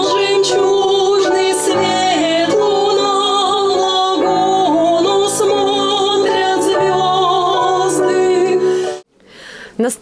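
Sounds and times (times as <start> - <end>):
women singing operatic duet: 0.0 - 9.0.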